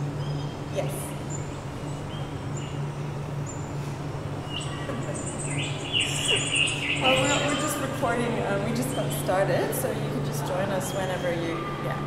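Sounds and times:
birds chirping: 0:00.0 - 0:09.6
steady low hum: 0:00.0 - 0:12.0.

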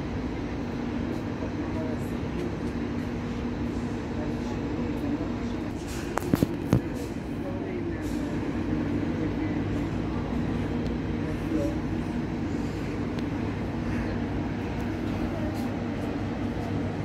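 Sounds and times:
train humming at platform: 0:00.0 - 0:17.0.

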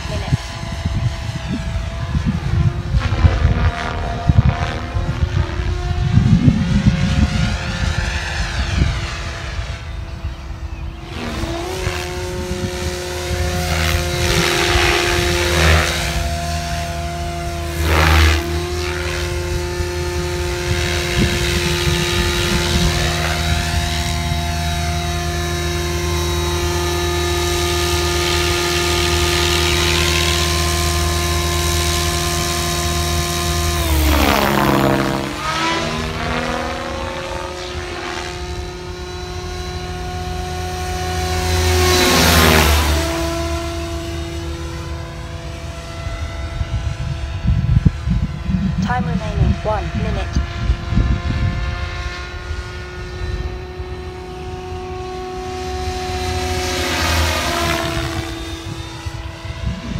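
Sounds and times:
rc helicopter buzzing whine: 0:00.0 - 0:59.9
wind rumble on microphone: 0:00.0 - 0:59.9.

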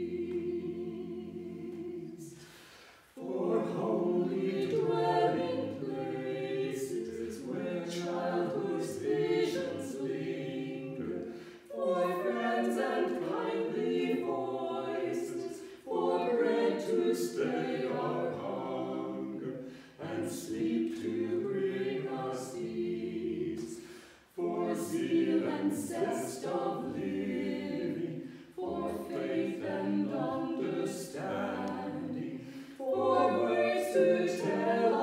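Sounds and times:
choir singing a hymn: 0:00.0 - 0:35.0.

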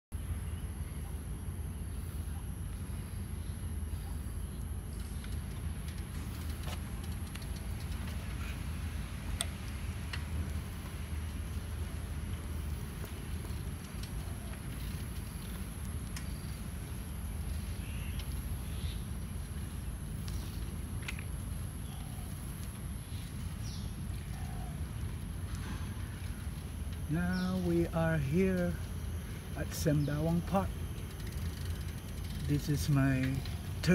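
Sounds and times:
bicycle tyres rolling: 0:00.2 - 0:33.9
faint clicks: 0:04.6 - 0:08.5, 0:09.3 - 0:10.6.

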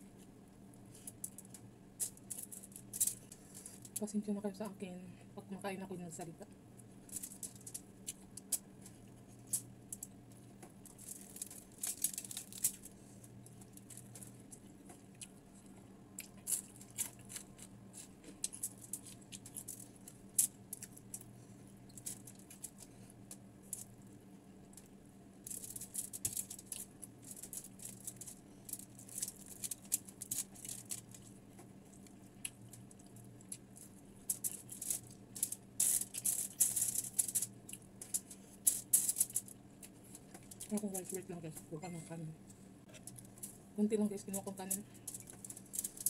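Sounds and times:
low steady hum: 0:00.0 - 0:46.0
chewing and crunching fried fish: 0:06.7 - 0:41.3, 0:44.4 - 0:46.0.

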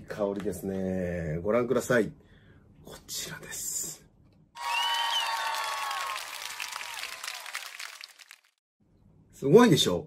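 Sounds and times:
applause and cheering: 0:04.6 - 0:08.6.

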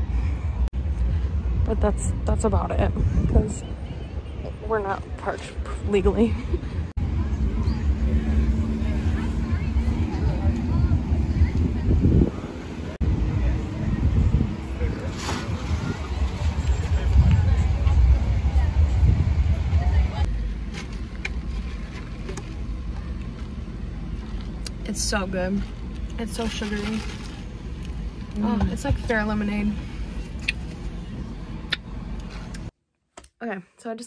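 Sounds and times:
low uneven rumble: 0:00.0 - 0:32.7
wind buffeting microphone: 0:00.5 - 0:20.3
faint voices talking: 0:01.2 - 0:20.4
steady motor hum: 0:05.8 - 0:32.7.

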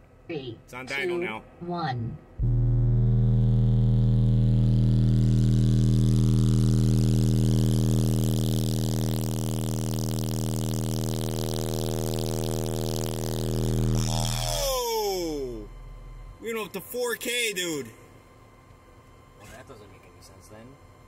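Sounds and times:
loud bass test tone: 0:02.4 - 0:16.6.

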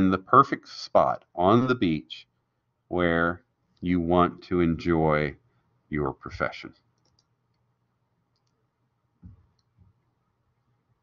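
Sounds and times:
computer mouse clicks: 0:07.0 - 0:07.6, 0:08.3 - 0:08.6, 0:09.2 - 0:10.0.

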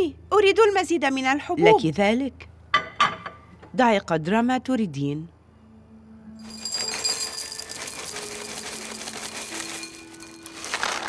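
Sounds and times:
cereal pouring into a bowl: 0:06.4 - 0:11.0.

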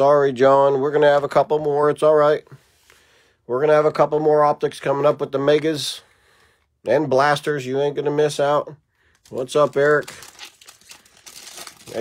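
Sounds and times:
foil wrapper crinkling and tearing: 0:09.2 - 0:12.0.

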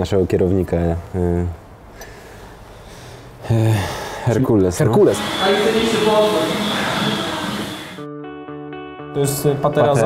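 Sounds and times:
man speaking: 0:04.4 - 0:07.3.

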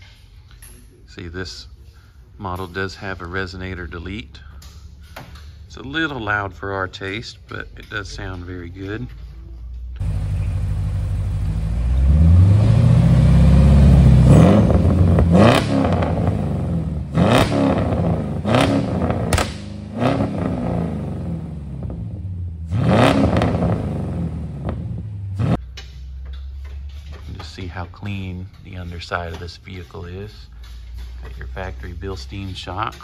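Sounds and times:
car engine revving: 0:10.0 - 0:25.7.

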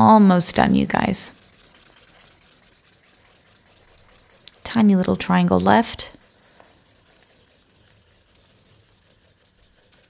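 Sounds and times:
marker scratching on paper: 0:00.0 - 0:10.0.

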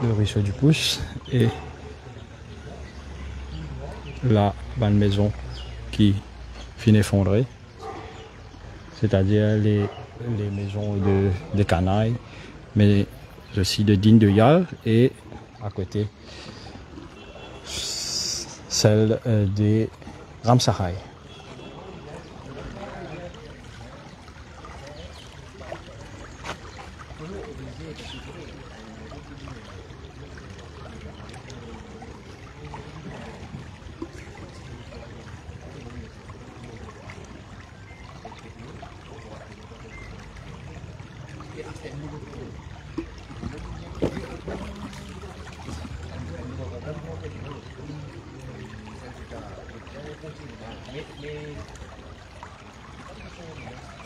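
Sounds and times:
people talking: 0:00.0 - 0:03.0, 0:03.6 - 0:05.4, 0:09.0 - 0:12.2, 0:12.8 - 0:16.1, 0:17.7 - 0:26.0, 0:27.1 - 0:37.4, 0:38.3 - 0:51.8, 0:53.1 - 0:54.0.

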